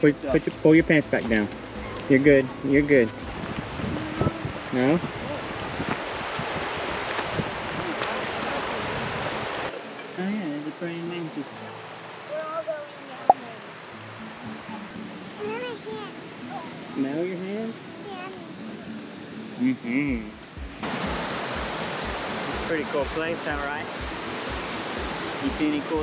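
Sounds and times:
creek rapids rushing: 0:00.0 - 0:26.0
children chattering and calling: 0:01.8 - 0:05.6, 0:14.5 - 0:17.2, 0:17.8 - 0:19.4.

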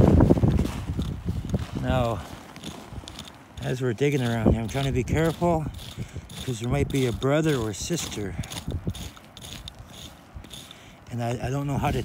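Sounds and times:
shale chips clicking and scraping: 0:00.9 - 0:12.0.

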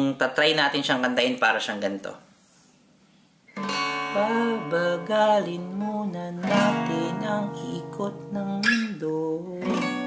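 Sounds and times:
acoustic guitar strum ringing: 0:03.5 - 0:10.0.

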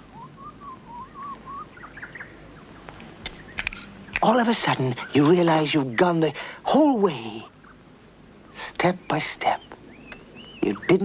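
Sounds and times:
soft wavering whistle-like call: 0:00.0 - 0:02.1
faint chirps: 0:08.4 - 0:11.0.

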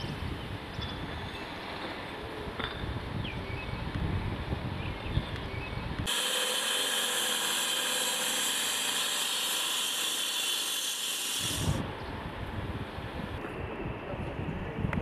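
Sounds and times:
wind rumble on microphone: 0:00.0 - 0:06.1, 0:11.6 - 0:15.0
angle grinder cutting concrete: 0:06.1 - 0:11.8.

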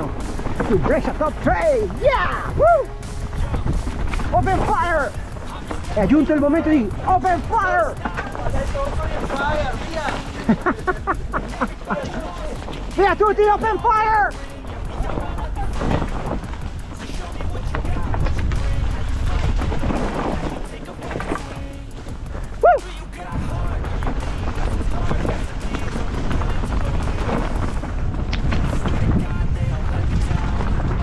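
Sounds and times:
bike rattling over stones: 0:00.0 - 0:31.0
wind rushing over microphone: 0:00.0 - 0:31.0
person shouting: 0:02.0 - 0:02.9, 0:22.6 - 0:22.9.

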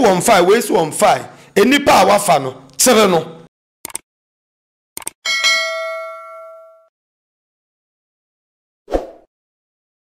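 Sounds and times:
bell-like notification ding: 0:05.3 - 0:06.9.

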